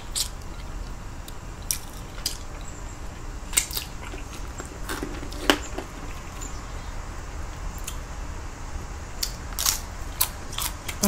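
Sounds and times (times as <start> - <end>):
low steady hum: 0.0 - 11.0
tortilla chip crunching: 3.5 - 6.5, 9.2 - 11.0.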